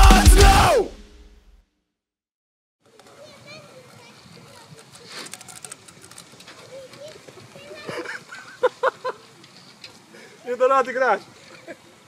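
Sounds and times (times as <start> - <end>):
feet scraping through sand: 3.2 - 5.6.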